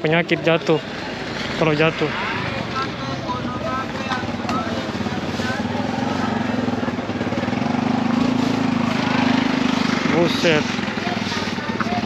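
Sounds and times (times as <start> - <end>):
background voices: 0.0 - 12.0
motorcycle engine running: 0.0 - 12.0.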